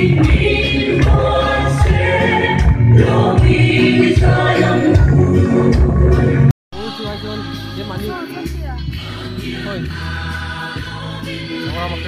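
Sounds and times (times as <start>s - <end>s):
choir singing gospel music: 0.0s - 12.0s
instrumental accompaniment: 0.0s - 12.0s.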